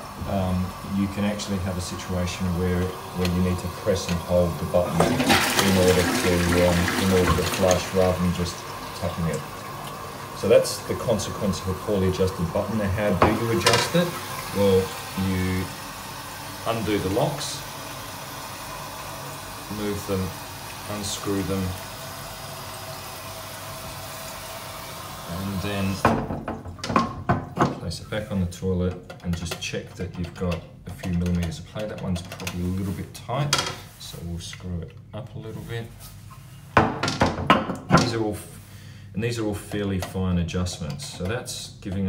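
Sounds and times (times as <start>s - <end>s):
water running into toilet cistern: 0.0s - 33.1s.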